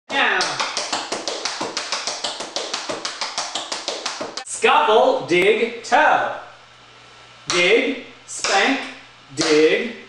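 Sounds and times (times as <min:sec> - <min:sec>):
tap shoes on wooden floor: 0:00.4 - 0:04.4.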